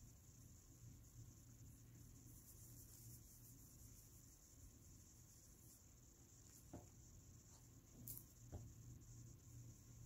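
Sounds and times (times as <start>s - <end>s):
faint high-pitched hiss: 0.0s - 10.0s
faint low hum: 0.0s - 10.0s.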